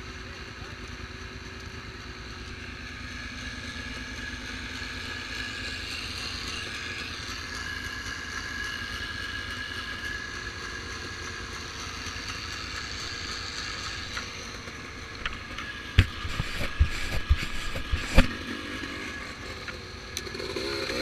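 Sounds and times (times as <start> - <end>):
engines rumbling low: 0.0 - 21.0
steady high whine: 0.9 - 21.0.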